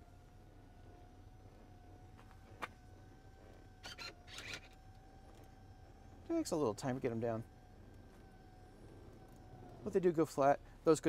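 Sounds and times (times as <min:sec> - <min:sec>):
seat motors whining: 0:00.0 - 0:11.0.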